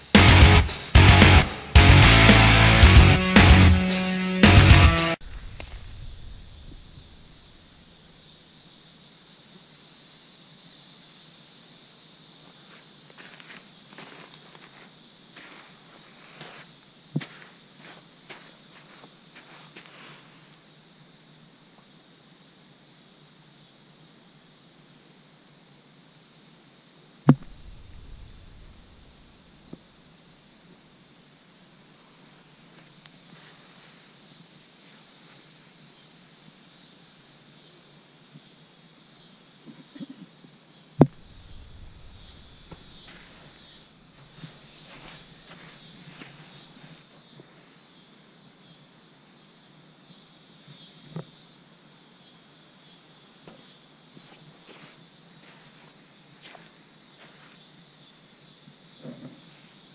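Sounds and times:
steady high hiss: 0.0 - 59.9
snake striking camera: 5.2 - 7.4, 27.3 - 29.3, 41.0 - 43.2.

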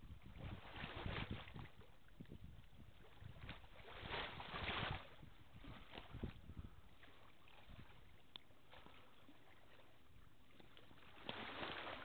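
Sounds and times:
faint tick: 8.3 - 8.5.

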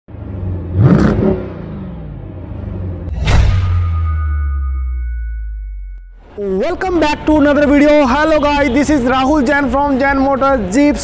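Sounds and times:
engine revving: 0.1 - 3.2.

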